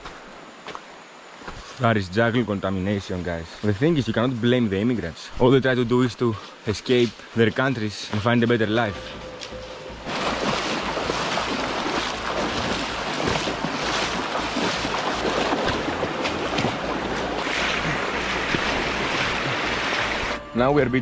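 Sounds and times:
feet wading through water: 6.4s - 20.4s
river rushing over stones: 10.0s - 20.4s.

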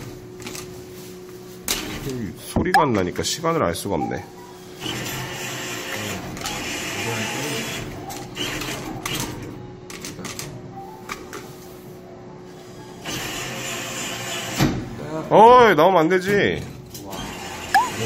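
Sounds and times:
arcade background noise: 0.0s - 18.0s
claw machine motors whirring: 4.6s - 10.5s, 12.6s - 14.7s, 16.8s - 18.0s.

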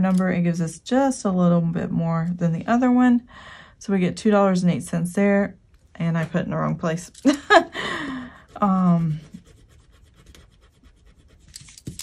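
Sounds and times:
pen scratching on paper: 8.5s - 11.8s.

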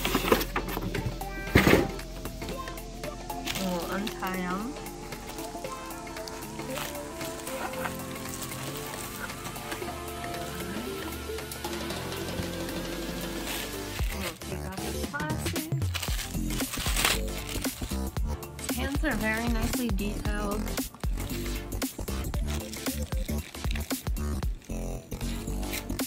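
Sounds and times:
music of held notes: 0.0s - 15.1s
plastic bags crinkling: 3.3s - 10.9s, 13.4s - 18.2s, 21.0s - 26.0s.

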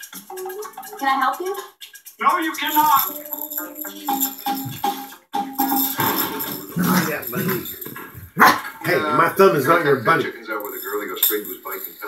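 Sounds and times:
music from a television: 0.0s - 7.0s
hand percussion rhythm: 0.0s - 12.0s.

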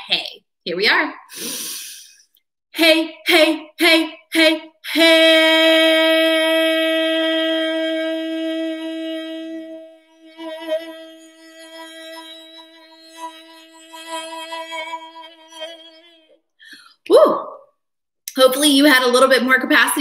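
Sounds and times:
woman singing held note: 2.8s - 11.2s.

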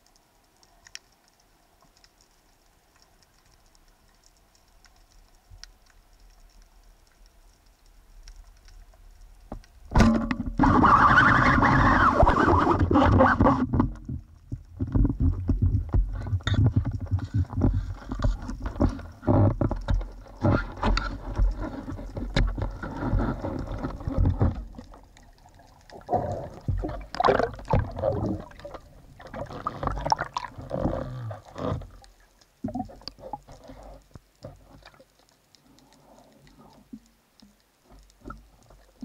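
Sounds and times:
water noise: 0.0s - 39.0s.

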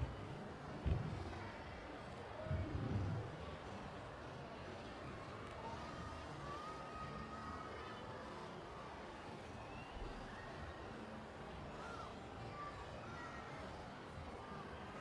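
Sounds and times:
arena crowd murmur: 0.0s - 15.0s
soft low thump: 0.8s - 1.3s.

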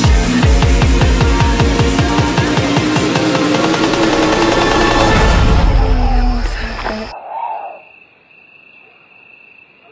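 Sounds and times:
music: 0.0s - 7.1s
cricket trilling: 5.8s - 9.9s.

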